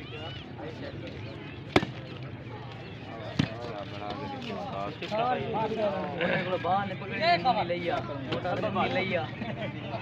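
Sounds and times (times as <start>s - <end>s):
faint background voices: 0.0s - 10.0s
ball being hit: 1.7s - 2.0s.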